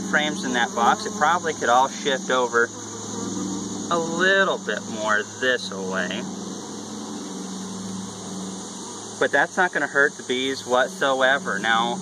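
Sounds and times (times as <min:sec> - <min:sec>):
honeybees droning: 0:00.0 - 0:12.0.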